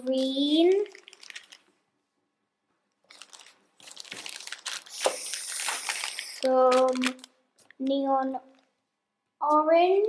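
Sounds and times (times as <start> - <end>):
plastic bags crinkling: 0.2 - 1.8, 3.0 - 7.9.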